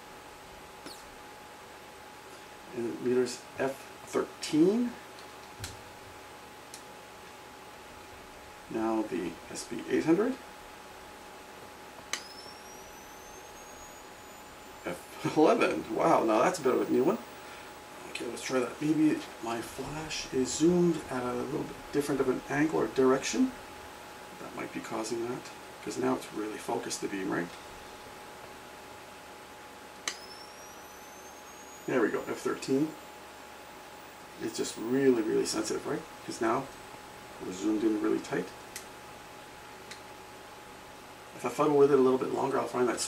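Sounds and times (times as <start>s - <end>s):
flash charging whine: 12.1s - 23.8s, 30.0s - 35.5s.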